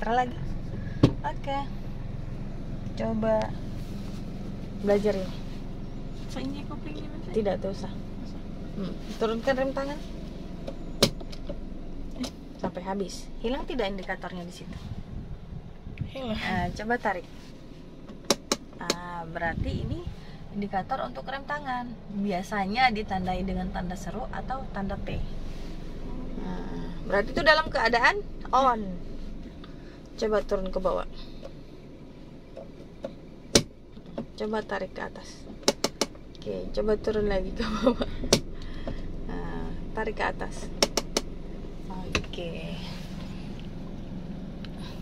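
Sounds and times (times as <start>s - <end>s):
low car cabin hum: 0.0s - 45.0s
faint handbrake click: 18.1s - 19.0s
handbrake lever click: 18.1s - 19.0s, 35.6s - 36.2s, 40.8s - 41.3s.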